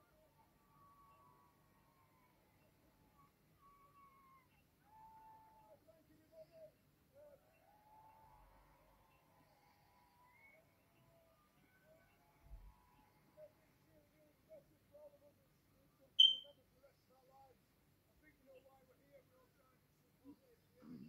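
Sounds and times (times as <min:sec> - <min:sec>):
faint wavering whistle-like tones: 0:00.7 - 0:07.4, 0:08.0 - 0:13.5, 0:16.2 - 0:16.6.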